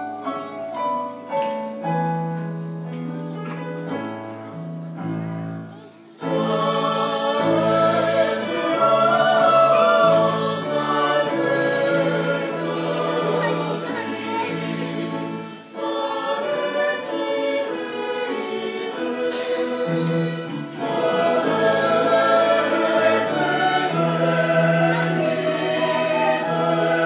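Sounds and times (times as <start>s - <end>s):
instrumental accompaniment: 0.0s - 27.0s
choir singing a hymn: 6.1s - 27.0s.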